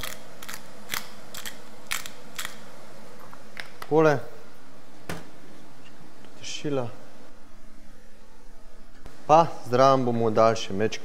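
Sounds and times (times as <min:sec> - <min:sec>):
pepper mill grinding peppercorns: 0:00.0 - 0:02.6.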